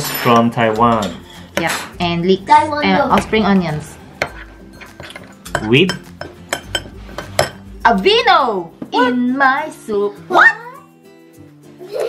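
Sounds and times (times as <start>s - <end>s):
utensils and bottles clinking: 0.0s - 2.2s, 2.8s - 7.8s.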